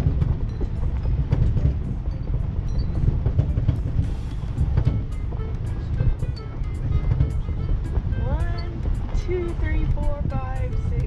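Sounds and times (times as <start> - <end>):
car knocks and rattles: 0.0 - 10.6
car engine and tyres rumbling: 0.0 - 11.0
light music: 0.0 - 11.0.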